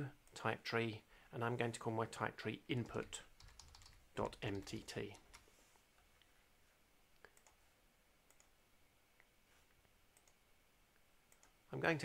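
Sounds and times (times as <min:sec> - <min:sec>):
computer mouse clicks: 0:07.2 - 0:07.6, 0:08.3 - 0:08.6, 0:10.2 - 0:10.4, 0:11.3 - 0:11.6.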